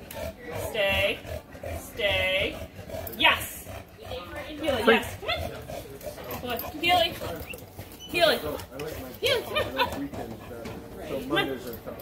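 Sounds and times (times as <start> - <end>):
dog whining: 3.1 - 8.4.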